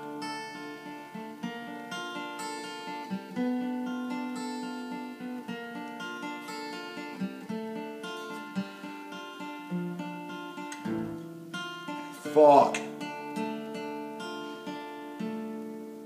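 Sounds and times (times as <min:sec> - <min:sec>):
acoustic guitar strumming chords: 0:00.0 - 0:16.0.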